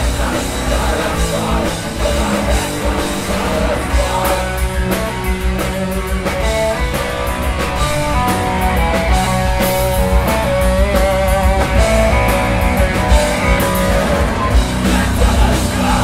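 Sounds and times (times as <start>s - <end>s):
distorted electric guitars: 0.0s - 16.0s
drums and crashing cymbals: 0.0s - 16.0s
punk band playing live: 0.0s - 16.0s.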